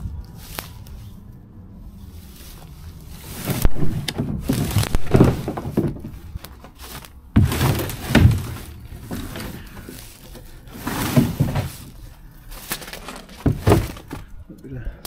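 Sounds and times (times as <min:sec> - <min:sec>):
footsteps through dry undergrowth: 0:00.0 - 0:14.4
twigs snapping: 0:00.2 - 0:01.0, 0:02.5 - 0:10.6, 0:11.9 - 0:14.3.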